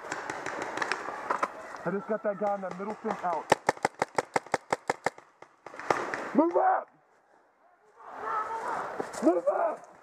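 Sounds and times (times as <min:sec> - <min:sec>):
paintball marker firing: 0:00.0 - 0:01.4, 0:02.5 - 0:06.3.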